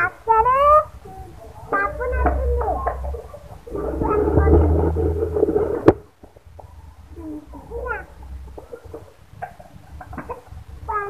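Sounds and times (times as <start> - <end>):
young child's speech-like voice: 0.0 - 5.4, 6.7 - 8.2, 10.2 - 11.0.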